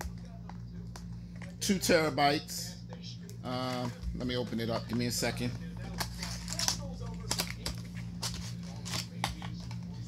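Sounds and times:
steady low hum: 0:00.0 - 0:10.0
packaging crinkling: 0:05.4 - 0:09.8.

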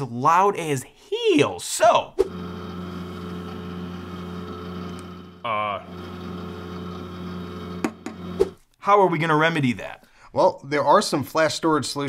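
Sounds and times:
hard drive humming: 0:02.3 - 0:08.6.

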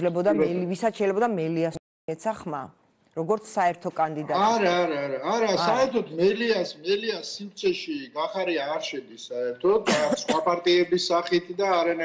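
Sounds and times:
man talking: 0:04.2 - 0:12.0
throat clearing: 0:09.9 - 0:10.6.

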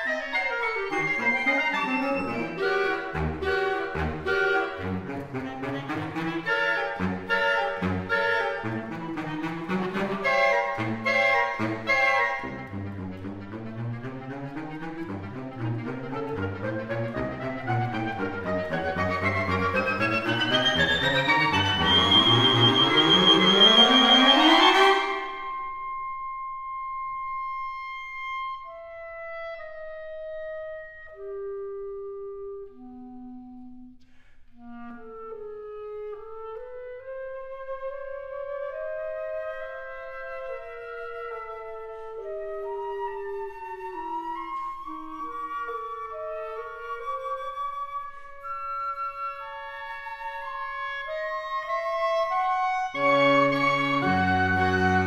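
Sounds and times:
woodwind ensemble playing: 0:00.0 - 0:55.0.

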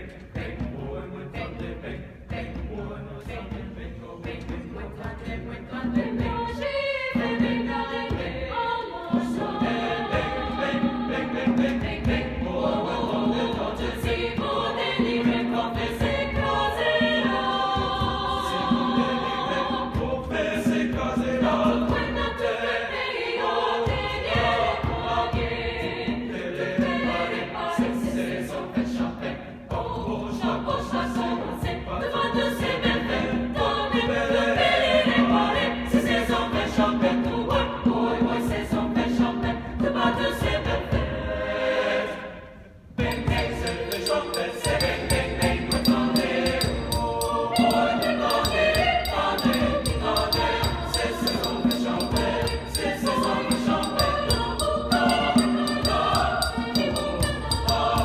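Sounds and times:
choir singing in harmony: 0:00.0 - 0:58.0.

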